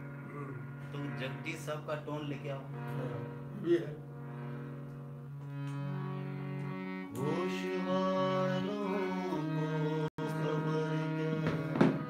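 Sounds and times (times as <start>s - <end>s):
harmonium holding notes: 0.0s - 12.0s
man singing long note: 7.1s - 12.0s.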